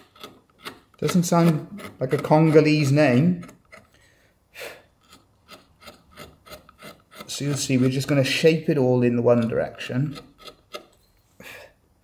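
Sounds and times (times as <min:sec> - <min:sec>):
carving tool shaving wood: 0:00.0 - 0:04.0, 0:05.0 - 0:10.9.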